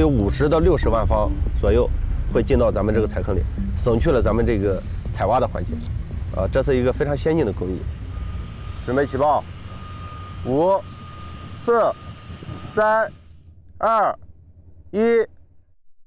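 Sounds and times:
man speaking: 0.0 - 7.9
low steady rumble: 0.0 - 15.7.

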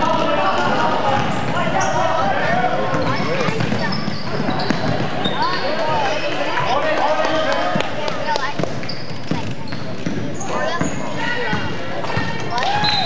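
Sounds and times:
basketball dribbling on court: 0.1 - 5.9, 7.7 - 12.4
sneaker squeaks: 1.2 - 2.1, 2.8 - 6.7, 8.2 - 13.0.

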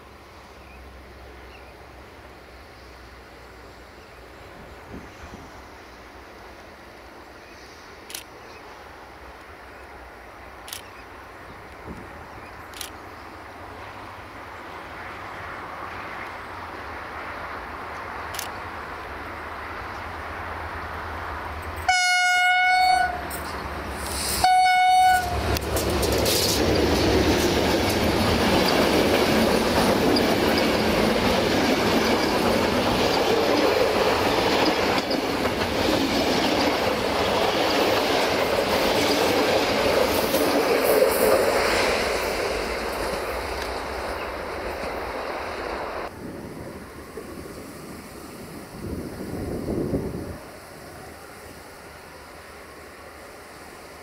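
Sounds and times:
train horn blasts: 21.8 - 23.4, 24.2 - 25.7
train wheels clattering over rails: 25.1 - 45.8.

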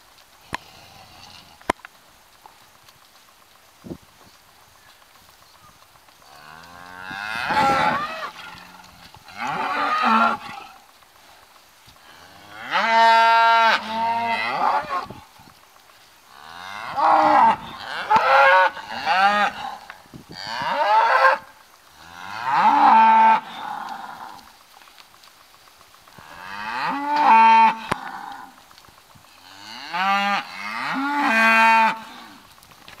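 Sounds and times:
cattle mooing: 6.4 - 10.8.

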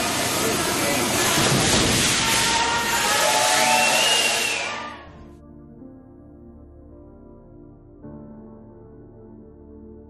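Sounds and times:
loud rushing noise: 0.0 - 5.0
quiet ambient music: 3.7 - 10.0.

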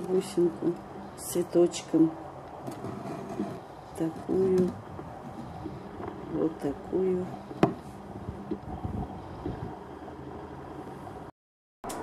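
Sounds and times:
person speaking: 2.9 - 4.9, 6.1 - 7.5.

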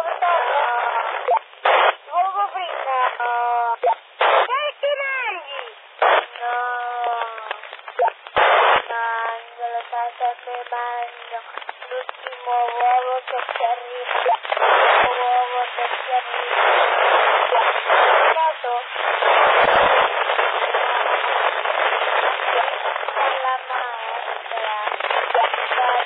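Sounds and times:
static hiss: 0.0 - 26.0
voices over walkie-talkie: 0.0 - 26.0.

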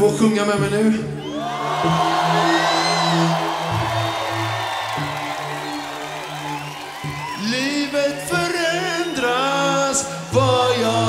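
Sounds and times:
whoops and whistles: 1.2 - 10.7
crowd cheering: 1.2 - 11.0
live band sustained chords: 1.4 - 7.4
person singing: 7.3 - 11.0.

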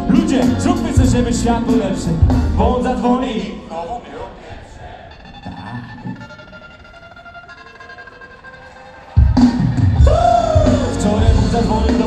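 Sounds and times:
hip-hop band with drums and bass: 0.0 - 4.4, 7.8 - 12.0
voice sliding up and down: 5.2 - 6.9.

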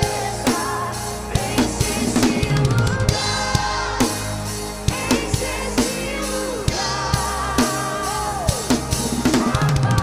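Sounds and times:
acoustic drum kit: 0.0 - 10.0
backing track music: 0.0 - 10.0.

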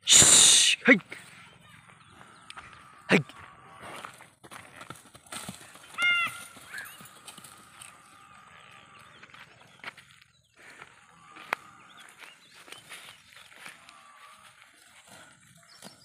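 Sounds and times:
hooves on dry ground: 1.0 - 16.0.

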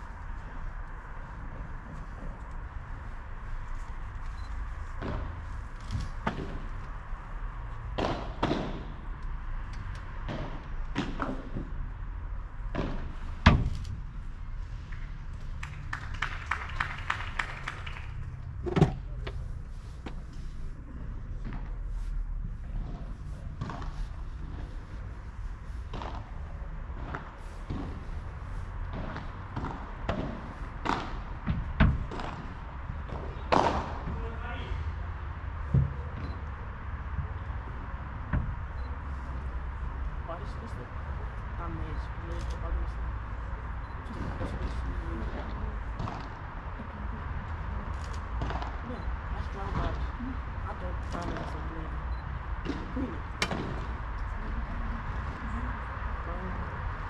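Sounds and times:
steady low rumble: 0.0 - 15.6, 18.2 - 57.0.

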